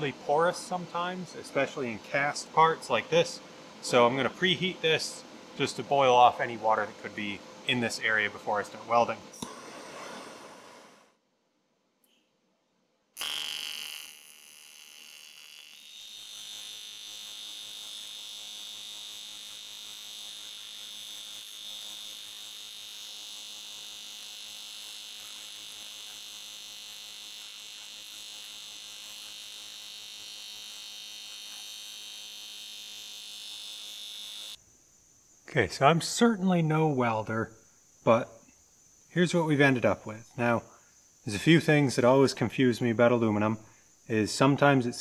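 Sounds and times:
welding arc buzzing: 0:13.2 - 0:34.6.

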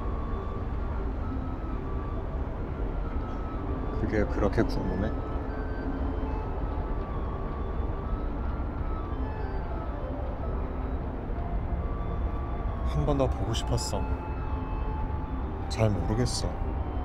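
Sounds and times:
city background rumble: 0:00.0 - 0:17.0
faint held musical notes: 0:00.0 - 0:17.0.

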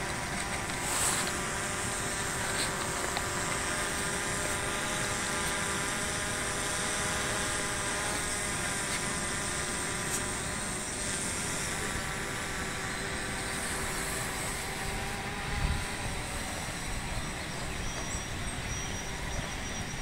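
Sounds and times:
drone propellers buzzing: 0:00.0 - 0:20.0.

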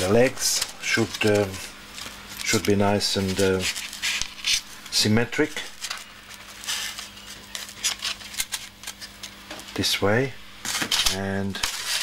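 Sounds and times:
hands rustling paper: 0:00.0 - 0:09.8
faint steady hum: 0:00.0 - 0:12.0.

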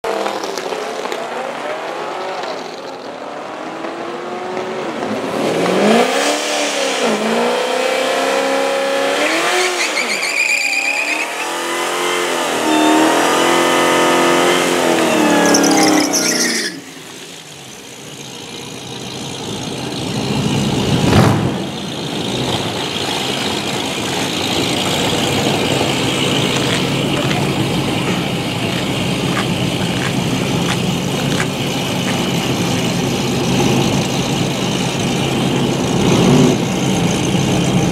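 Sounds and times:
car engine revving hard: 0:04.0 - 0:09.9, 0:11.1 - 0:16.7, 0:20.0 - 0:37.9
tyres squealing: 0:09.6 - 0:11.7, 0:12.5 - 0:14.3, 0:14.9 - 0:19.4, 0:21.8 - 0:33.0
car engine idling: 0:16.8 - 0:37.9.

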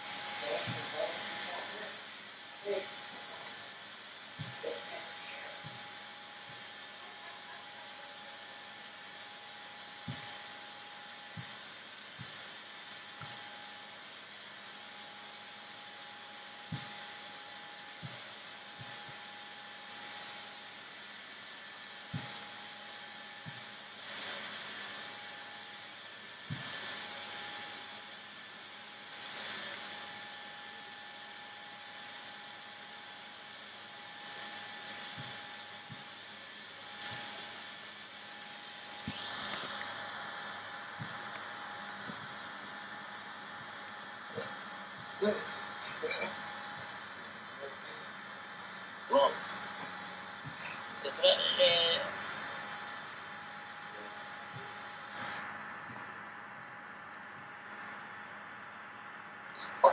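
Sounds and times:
faint hum tone: 0:00.0 - 0:59.9.

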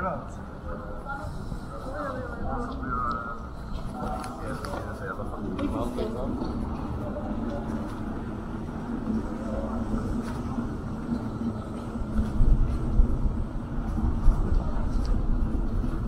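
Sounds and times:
city rumble: 0:00.0 - 0:16.0.

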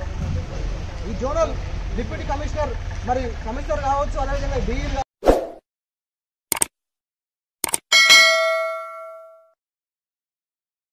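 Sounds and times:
bell ding: 0:07.9 - 0:09.6.

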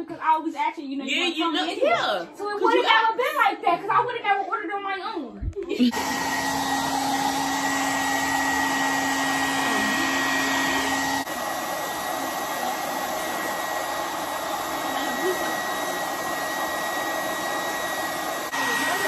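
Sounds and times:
hair dryer blowing: 0:05.7 - 0:19.0.

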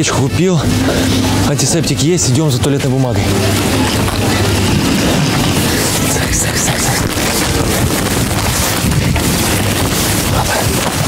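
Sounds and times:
indistinct voices: 0:00.0 - 0:11.0
supermarket background noise: 0:00.0 - 0:11.0.

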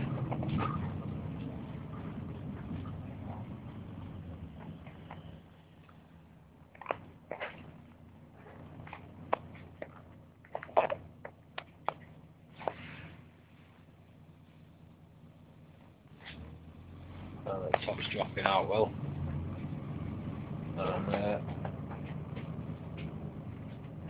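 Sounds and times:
low rumble: 0:00.0 - 0:24.0.

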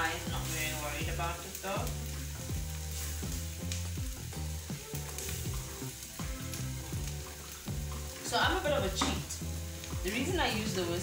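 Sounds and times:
roux sizzling in saucepan: 0:00.0 - 0:11.0.

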